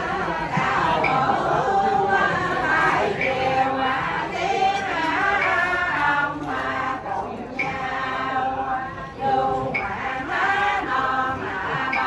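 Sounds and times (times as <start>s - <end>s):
women singing a prayer chant: 0.0s - 12.0s.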